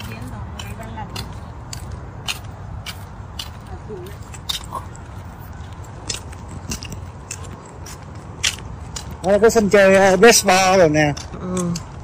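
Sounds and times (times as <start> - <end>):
footsteps on gritty path: 0.0 - 12.0
steady low rumble: 0.0 - 12.0.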